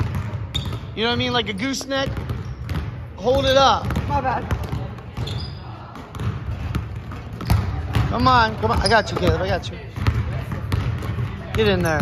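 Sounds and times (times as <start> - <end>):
basketballs bouncing on wooden floor: 0.0 - 12.0.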